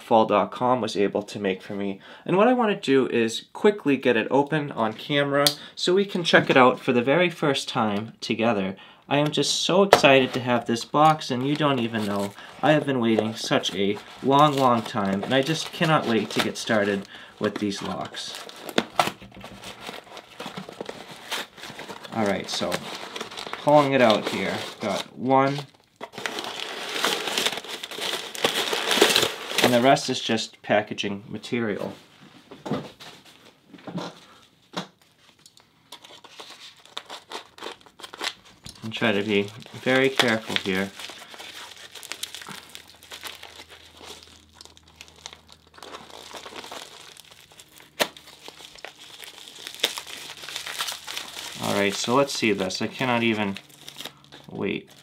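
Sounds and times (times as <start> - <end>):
cardboard and packing tape crackling: 10.0 - 30.0, 35.3 - 55.0
padded mailer crinkling: 10.1 - 29.8, 35.3 - 55.0.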